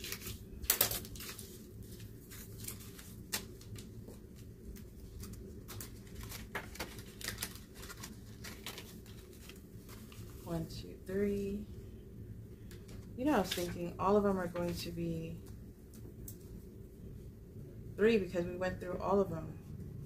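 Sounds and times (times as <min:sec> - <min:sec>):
paper bills rustling and crinkling: 0:00.0 - 0:10.7, 0:12.7 - 0:13.9.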